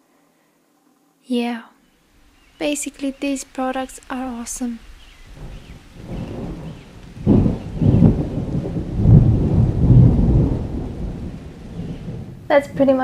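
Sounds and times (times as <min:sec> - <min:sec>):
rolling thunder: 0:03.8 - 0:13.0.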